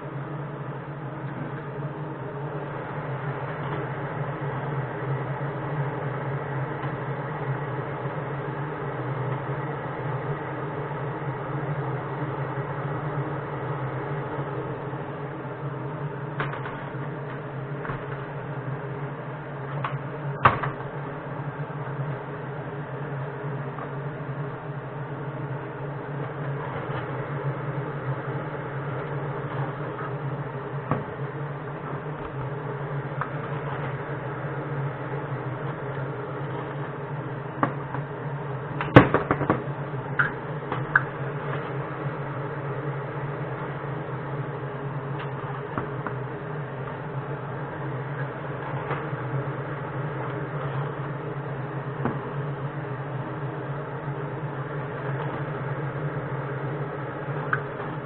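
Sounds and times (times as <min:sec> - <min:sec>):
machine hum: 0:00.0 - 0:58.0.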